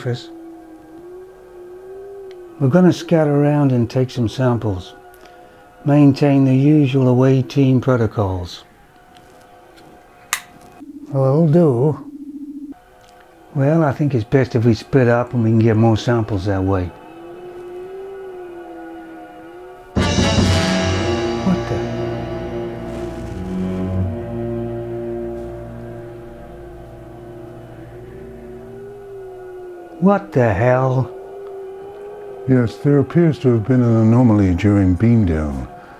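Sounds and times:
eerie sustained music drone: 0:00.0 - 0:35.9
low pulsing tone: 0:20.0 - 0:29.5.

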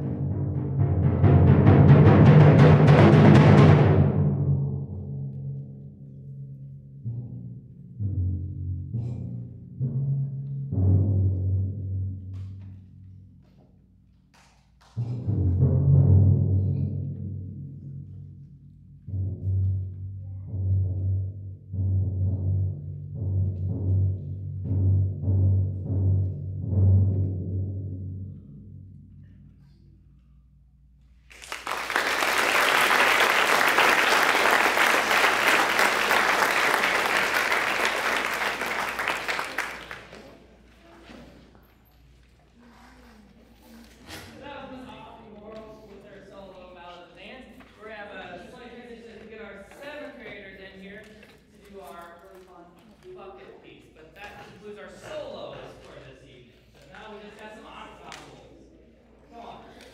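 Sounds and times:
timpani strokes and rolls: 0:00.0 - 0:30.9.

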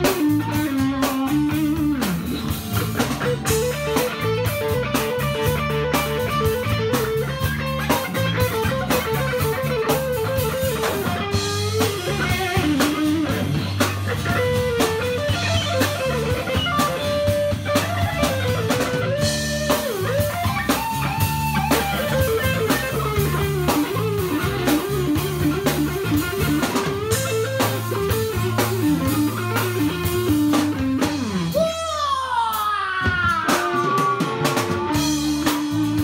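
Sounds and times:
bass line: 0:00.0 - 0:36.0
electric guitar solo: 0:00.0 - 0:36.0.

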